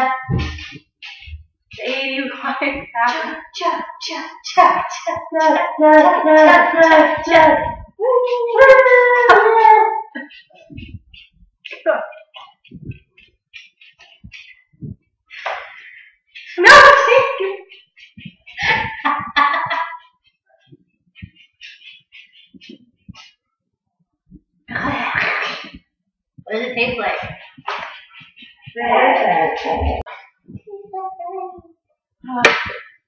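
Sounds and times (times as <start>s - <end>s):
woman wailing: 5.3s - 10.2s.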